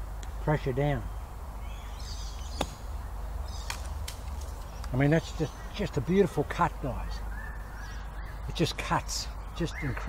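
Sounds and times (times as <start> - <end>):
golf club striking sand: 2.5 - 3.0.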